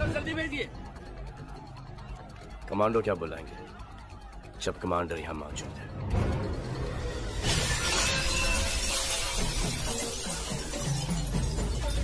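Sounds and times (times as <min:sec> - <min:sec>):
background music: 0:00.0 - 0:12.0
glass shattering: 0:07.3 - 0:12.0.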